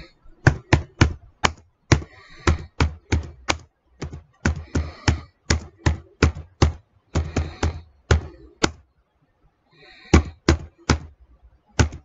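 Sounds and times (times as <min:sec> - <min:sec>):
computer keyboard typing: 0:00.4 - 0:08.8, 0:11.8 - 0:12.0.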